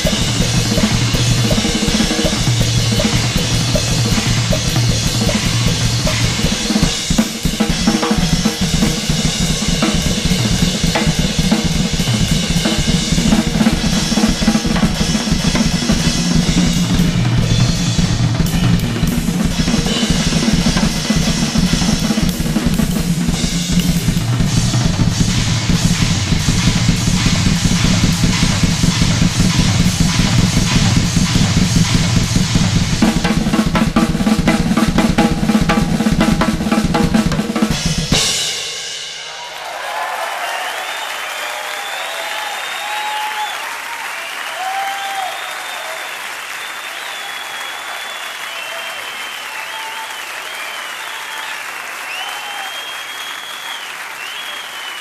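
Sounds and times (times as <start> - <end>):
drum kit played solo: 0.0 - 39.4.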